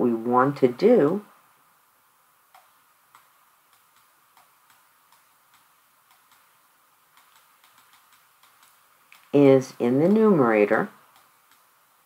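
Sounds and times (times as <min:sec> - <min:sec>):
stylus ticking on touchscreen: 0:02.5 - 0:09.3, 0:11.1 - 0:12.0.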